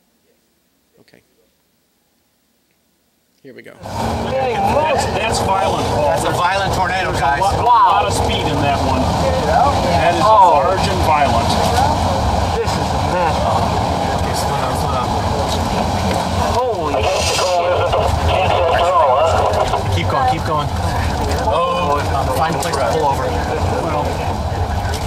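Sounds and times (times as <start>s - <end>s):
car road and engine noise: 3.8s - 25.0s
indistinct voices talking: 3.8s - 25.0s.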